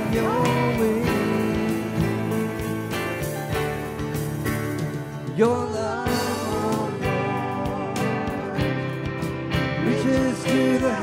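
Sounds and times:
worship band with guitar and beat: 0.0s - 11.0s.

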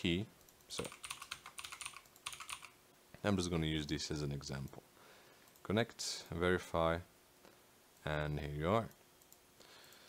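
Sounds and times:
keyboard typing: 0.4s - 2.8s.

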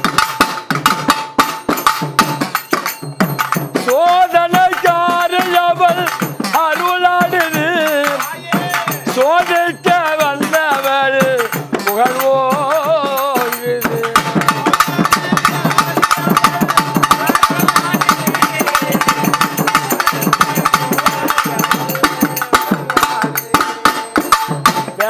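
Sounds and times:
drum ensemble playing fast: 0.0s - 25.0s
person singing: 3.8s - 25.0s.

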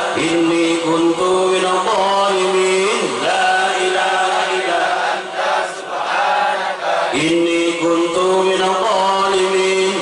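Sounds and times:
man chanting through loudspeakers: 0.0s - 5.9s, 6.7s - 10.0s.

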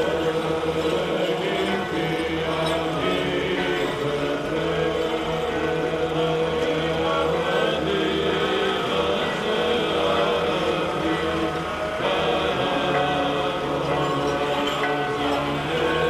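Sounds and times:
church chanting: 0.0s - 16.0s.

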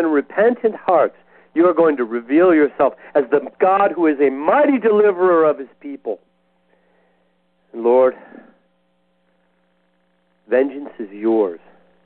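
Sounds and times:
man speaking: 0.0s - 6.2s, 7.7s - 8.6s, 10.5s - 11.9s
faint electrical mains hum: 0.0s - 12.0s.

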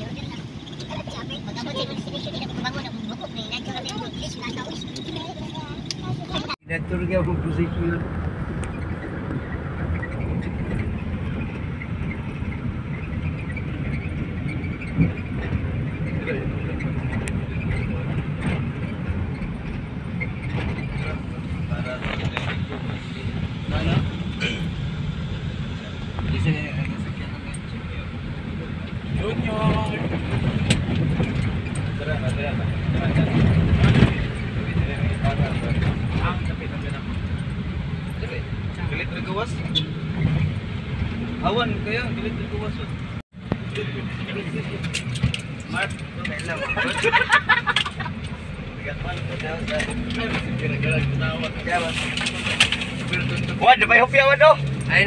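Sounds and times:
passengers talking: 0.0s - 55.0s
van engine and road rumble: 0.0s - 55.0s.

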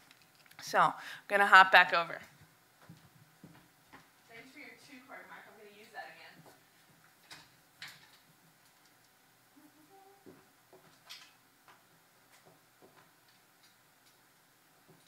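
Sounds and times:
faint clicks and taps: 2.2s - 4.3s, 6.4s - 9.2s, 10.2s - 14.2s.

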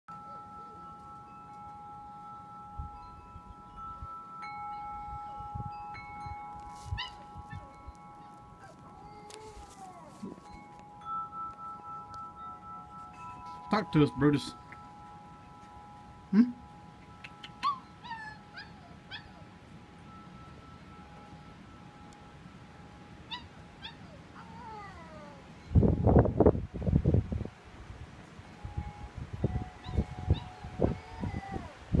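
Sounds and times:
wind chimes ringing: 0.1s - 32.0s
puppy howling: 7.0s - 10.5s, 17.6s - 19.5s, 23.3s - 25.5s, 29.8s - 31.8s
wind buffeting microphone: 25.6s - 32.0s.

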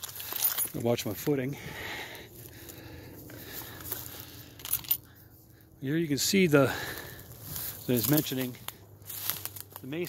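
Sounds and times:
faint steady hum: 0.0s - 9.8s
footsteps on dry leaves: 0.0s - 10.0s.

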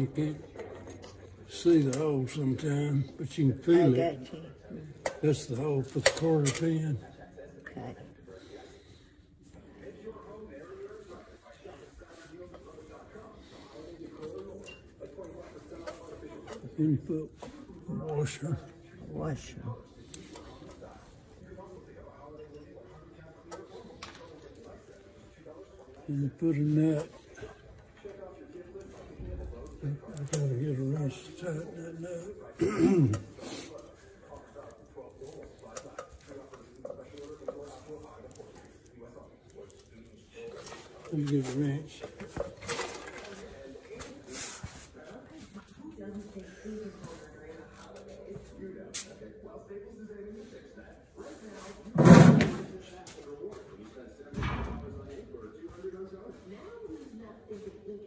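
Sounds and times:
faint voices: 0.0s - 58.0s
tools handled on concrete floor: 14.1s - 16.8s, 40.4s - 45.7s.

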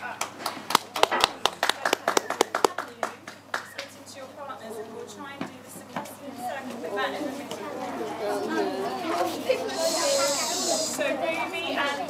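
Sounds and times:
sharp claps: 0.2s - 4.0s
children chattering: 1.6s - 12.0s
long hiss: 9.8s - 11.0s.

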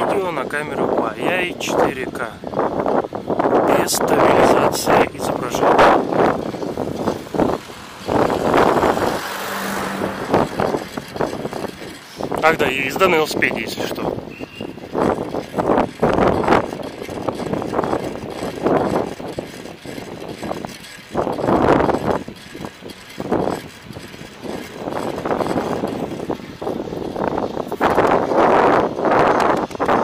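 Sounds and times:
street noise rushing: 0.0s - 30.0s.

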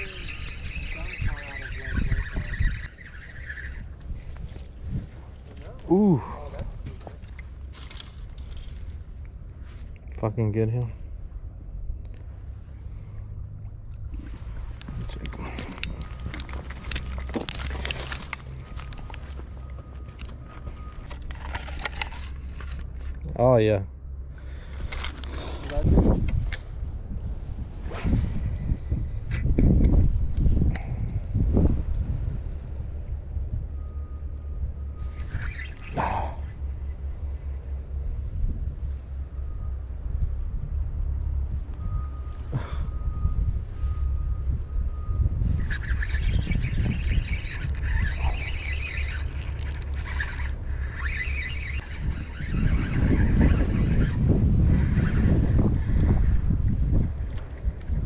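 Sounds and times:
high rapid chattering: 0.0s - 3.9s
wind rumbling on microphone: 0.0s - 23.2s, 24.5s - 58.0s
fishing gear knocks and handling: 49.3s - 50.6s.

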